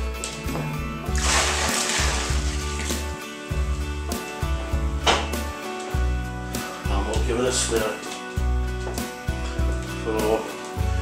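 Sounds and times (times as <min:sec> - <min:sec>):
background music: 0:00.0 - 0:11.0
water pouring into plastic bucket: 0:01.1 - 0:03.2.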